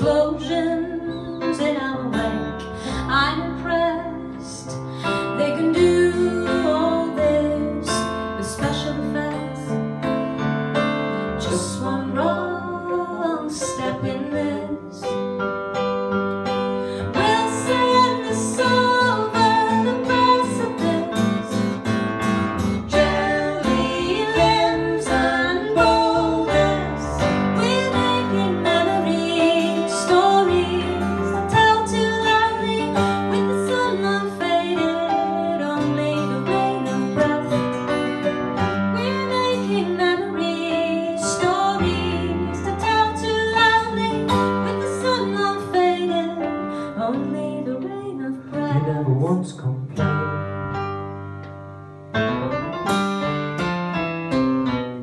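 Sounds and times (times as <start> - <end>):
woman singing: 0.0 - 9.8, 11.4 - 15.2, 17.0 - 21.6, 22.9 - 37.8, 38.8 - 49.0
guitar playing: 0.0 - 55.0
piano playing: 0.0 - 55.0.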